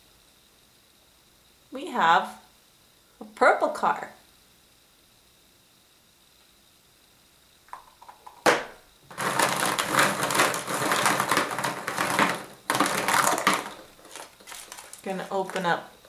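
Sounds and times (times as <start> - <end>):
plastic eggs clattering in a bowl: 7.8 - 15.9.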